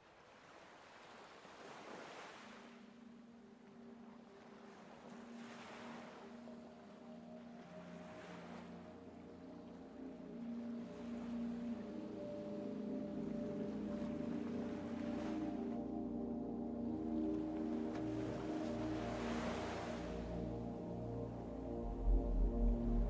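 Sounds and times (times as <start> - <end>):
ocean waves washing in: 0.0 - 23.0
ambient synth pad music: 2.8 - 23.0.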